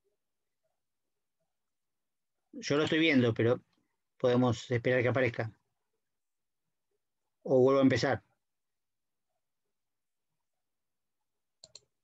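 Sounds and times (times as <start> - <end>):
computer mouse clicks: 11.6 - 12.0.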